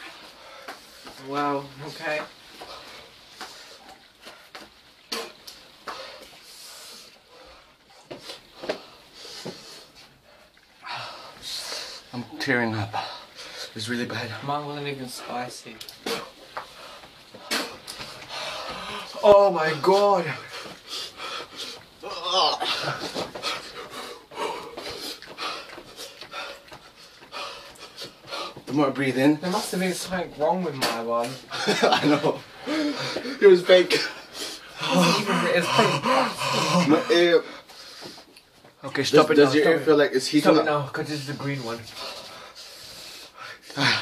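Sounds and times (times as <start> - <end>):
people panting: 0.0 - 1.3, 2.4 - 14.5, 15.1 - 38.8, 40.6 - 44.0
person breathing and sniffing: 2.6 - 12.1, 16.0 - 19.2, 22.7 - 28.7, 34.0 - 38.4, 41.2 - 44.0
wavering moan: 22.0 - 24.9, 34.8 - 37.4.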